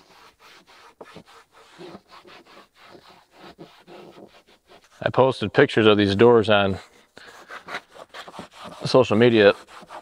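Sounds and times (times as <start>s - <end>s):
wipe rubbing on textured plastic: 0.0s - 10.0s.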